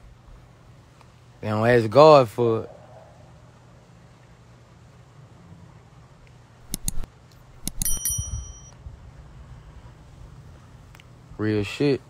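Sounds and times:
bright metallic ding: 7.6 - 8.8.

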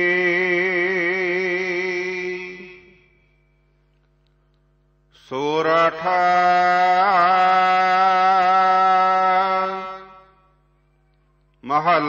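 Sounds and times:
person chanting: 0.0 - 3.1, 5.2 - 12.0.

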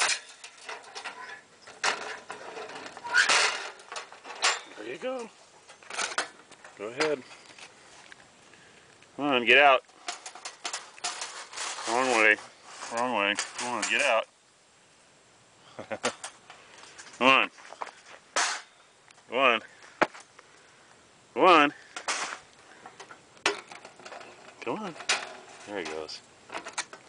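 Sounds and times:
metallic rattle of wire cage trap: 0.0 - 6.3.

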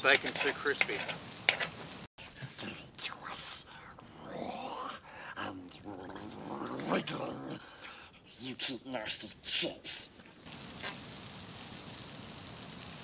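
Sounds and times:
voices speaking: 0.0 - 1.2
bacon sizzling: 0.0 - 2.1, 10.4 - 13.0
whispering voices: 2.2 - 7.3.

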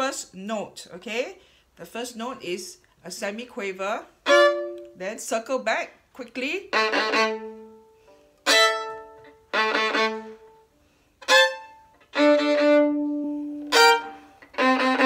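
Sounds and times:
violin bowed notes: 4.2 - 5.0, 6.6 - 15.0.

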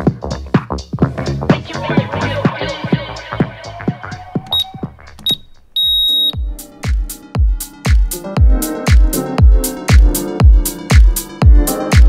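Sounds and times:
interval timer beeps: 4.5 - 6.5.

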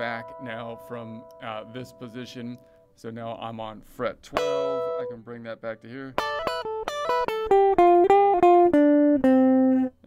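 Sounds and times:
clean electric guitar picking notes: 0.0 - 2.7, 4.3 - 5.2, 6.2 - 10.0.

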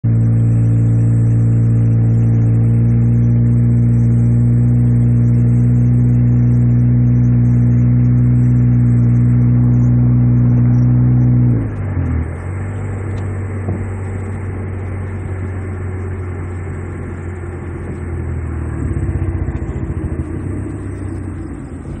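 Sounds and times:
car engine and road noise: 0.0 - 22.0
rough engine rumble: 0.0 - 22.0.

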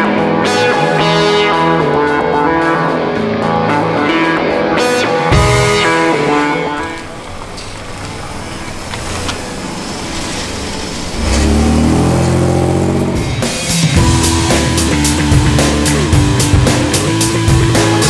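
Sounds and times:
rock music with guitar: 0.0 - 7.1, 12.1 - 18.0
car engine accelerating: 5.4 - 18.0.

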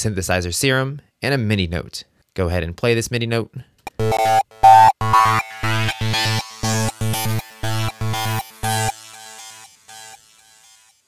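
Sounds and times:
synthesizer note tail: 3.9 - 10.8.

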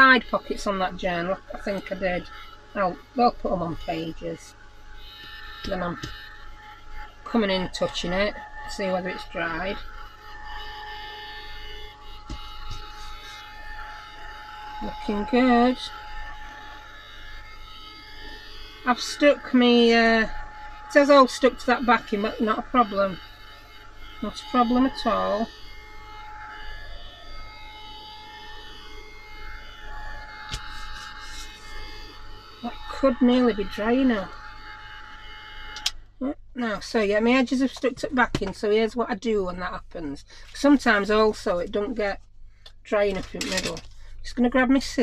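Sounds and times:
heat gun fan whine: 0.0 - 45.0.

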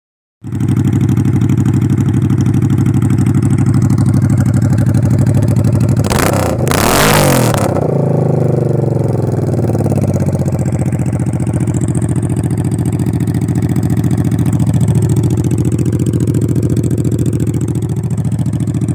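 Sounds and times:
motorcycle engine idling: 0.4 - 6.7, 7.7 - 18.9
motorcycle engine revving: 0.4 - 18.9.

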